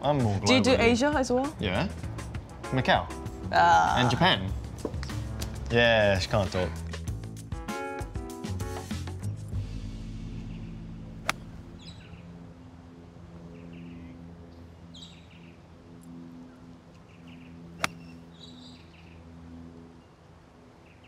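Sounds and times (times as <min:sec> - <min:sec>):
birds chirping: 0:10.3 - 0:21.0
golf club striking ball: 0:11.2 - 0:11.8, 0:17.8 - 0:18.2.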